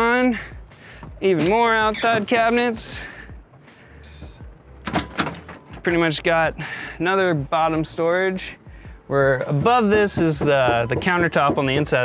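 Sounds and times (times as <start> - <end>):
metal door opening: 1.0 - 2.7, 4.0 - 6.1
compartment door latch clicks: 4.8 - 5.8.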